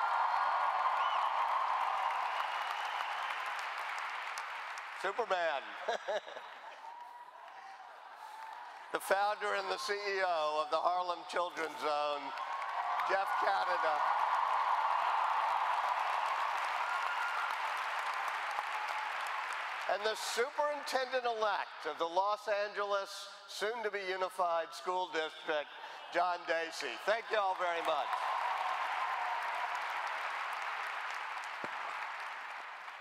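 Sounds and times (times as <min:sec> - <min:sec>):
large audience applauding: 0:00.0 - 0:10.4, 0:11.3 - 0:20.5, 0:26.7 - 0:33.0.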